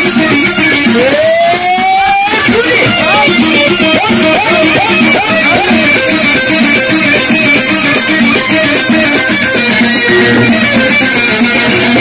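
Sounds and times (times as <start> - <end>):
amplified plucked string instrument: 0.0 - 12.0
live folk music through speakers: 0.0 - 12.0.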